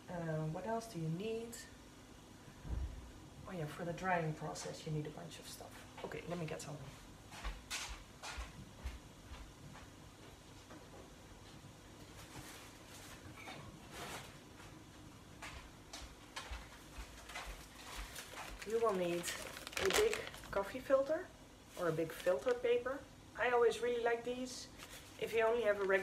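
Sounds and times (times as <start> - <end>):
footsteps on hard floor: 7.3 - 11.1, 15.4 - 18.7
rustling in cupboard: 12.0 - 14.8, 16.5 - 20.7.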